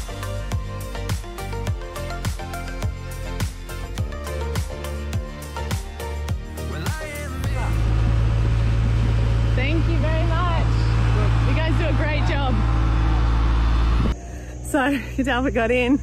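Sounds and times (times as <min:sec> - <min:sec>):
background music: 0:00.0 - 0:14.1
loud low rumble: 0:07.2 - 0:14.2.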